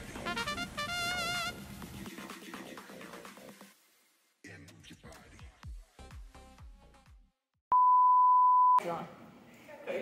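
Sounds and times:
high electronic beep: 7.7 - 8.8.

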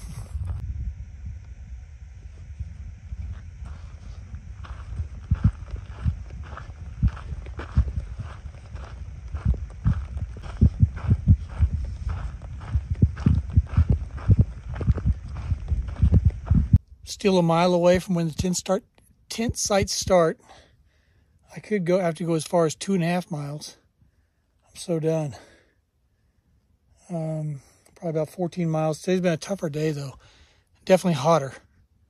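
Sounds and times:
footsteps on sandy dirt trail: 0.0 - 18.8
steady low rumble: 0.0 - 20.2.

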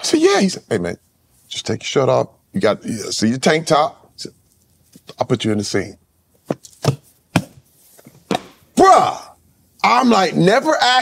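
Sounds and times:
hand slaps: 8.3 - 8.6.

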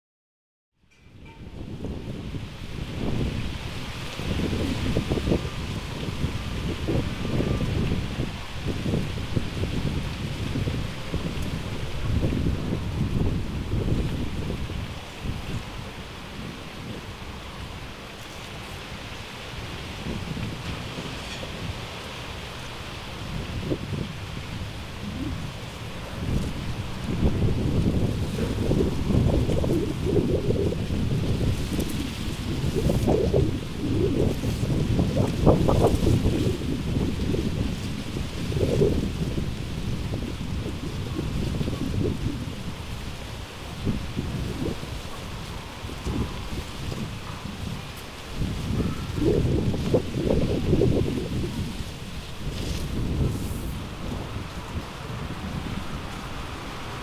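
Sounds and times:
heavy wind gusts: 0.9 - 57.0.

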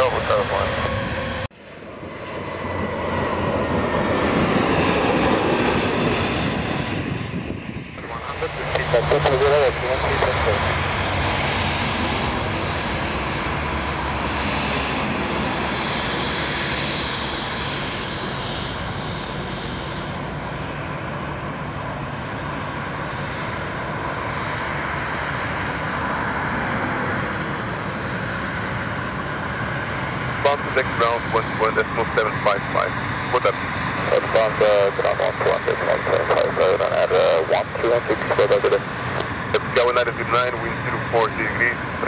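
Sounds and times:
jet engines taxiing: 0.0 - 42.0.

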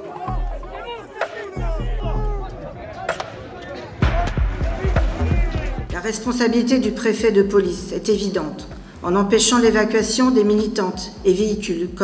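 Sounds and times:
street crowd voices: 0.0 - 6.0
low drum thumps: 4.0 - 6.2.

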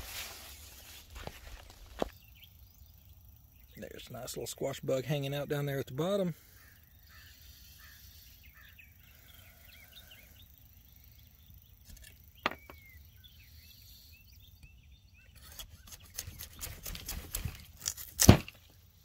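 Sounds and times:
rustling and handling noise: 0.0 - 2.2
distant birds chirping: 0.0 - 19.0.

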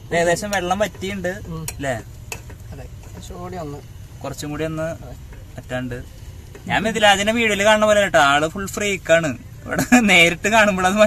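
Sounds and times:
man talking: 0.0 - 2.1, 2.7 - 11.0.

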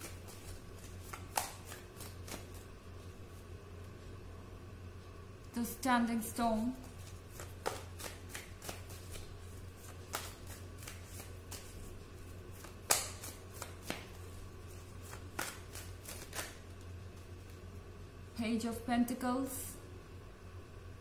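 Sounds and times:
cards being shuffled: 0.0 - 3.4, 6.8 - 17.6
low steady hum: 0.0 - 21.0.

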